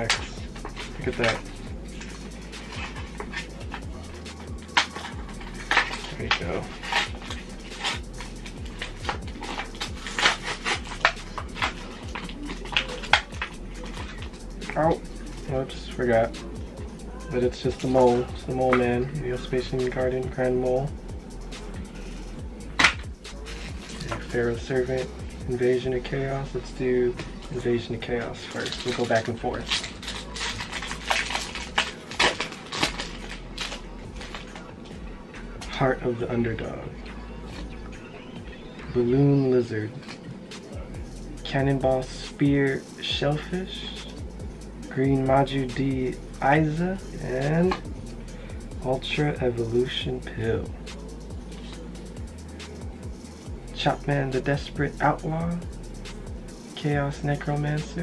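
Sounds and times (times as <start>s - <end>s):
plastic packaging crinkling and tearing: 0.0s - 14.3s, 28.3s - 34.7s.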